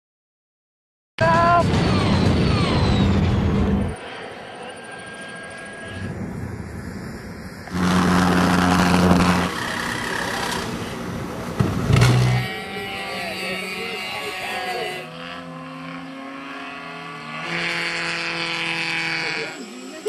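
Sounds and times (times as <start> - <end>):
jet engines droning: 1.7 - 17.4.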